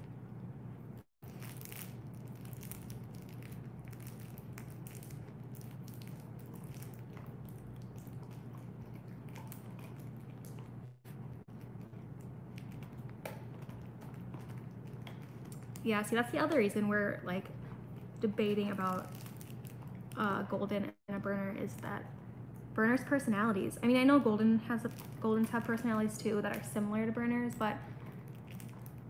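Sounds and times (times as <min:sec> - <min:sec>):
steady low hum: 0:00.0 - 0:29.0
dog chewing on a toy: 0:02.2 - 0:15.8.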